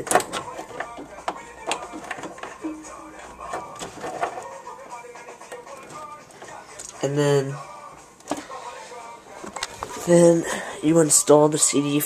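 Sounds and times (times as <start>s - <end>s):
plugs clicking into jacks: 0.0s - 4.5s.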